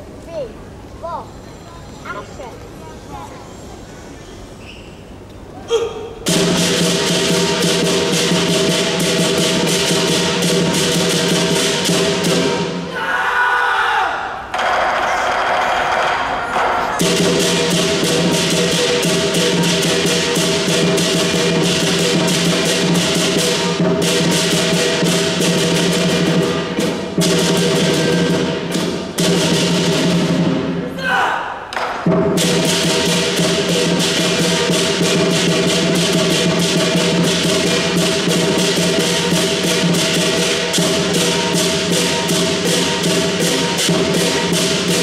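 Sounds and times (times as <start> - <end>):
cymbals clashing rapidly: 6.1 - 13.0, 14.4 - 31.0, 31.6 - 45.0
large drum beaten steadily: 6.2 - 12.9, 17.0 - 30.8, 32.0 - 45.0
gong ringing: 36.4 - 45.0.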